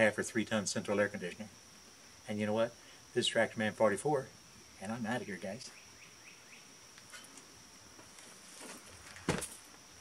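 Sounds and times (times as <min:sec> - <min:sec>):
high insect drone: 0:00.0 - 0:10.0
boots knocking and scuffing: 0:08.0 - 0:09.6.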